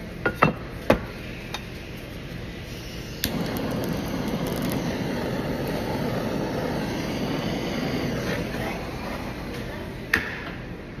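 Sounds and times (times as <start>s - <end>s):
butane torch burning: 2.0s - 10.9s
torch ignition click: 3.2s - 8.2s.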